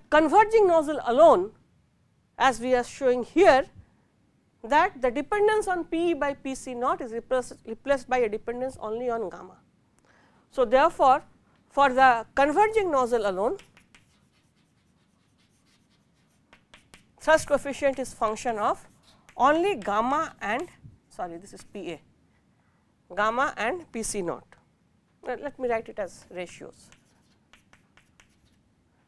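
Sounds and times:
chalk taps: 0:13.2 - 0:20.8, 0:26.4 - 0:28.6
chalk writing on blackboard: 0:13.4 - 0:17.2, 0:18.0 - 0:20.0, 0:26.5 - 0:28.6.

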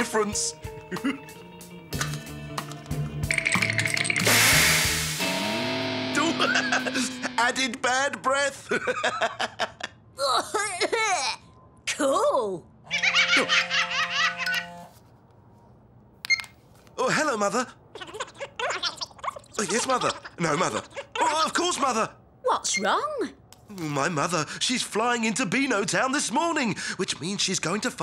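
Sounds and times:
background music: 0:00.0 - 0:07.6
loud hissing whoosh: 0:04.3 - 0:05.5.

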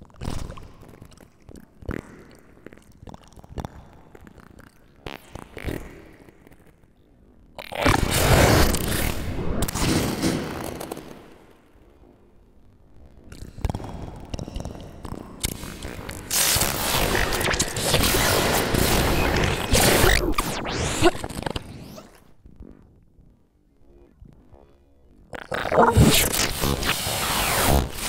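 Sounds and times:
harsh distorted electronic noise: 0:15.4 - 0:22.0, 0:24.6 - 0:28.0
processed vocal sounds: 0:25.3 - 0:28.0.

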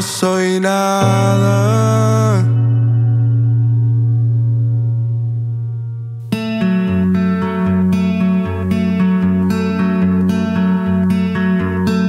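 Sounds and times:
person singing: 0:00.0 - 0:03.4
held low keyboard note: 0:01.0 - 0:06.4.

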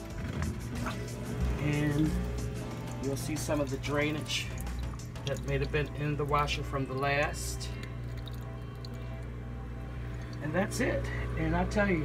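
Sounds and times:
background music: 0:00.0 - 0:12.0
water trickling into metal sink: 0:00.8 - 0:09.2.

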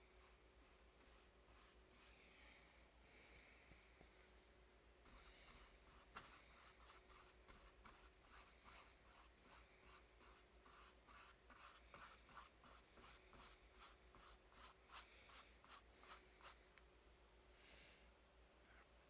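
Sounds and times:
paintbrush scrubbing strokes: 0:00.0 - 0:02.3, 0:05.0 - 0:16.6.

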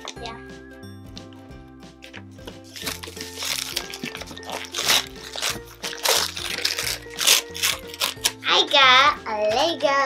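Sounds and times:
background music: 0:00.0 - 0:10.0
wrapping paper tearing and crinkling: 0:02.6 - 0:08.7.

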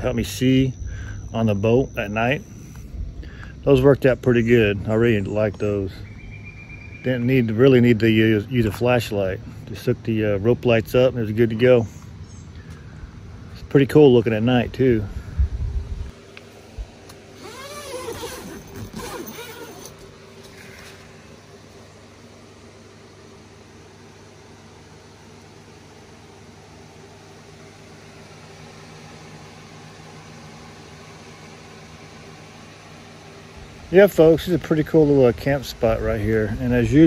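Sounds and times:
electric fan motor hum: 0:00.0 - 0:37.0.

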